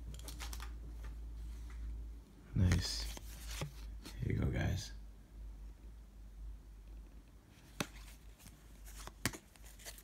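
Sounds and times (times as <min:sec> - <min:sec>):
trading cards clicking and rustling: 0:00.0 - 0:01.2, 0:07.8 - 0:10.0.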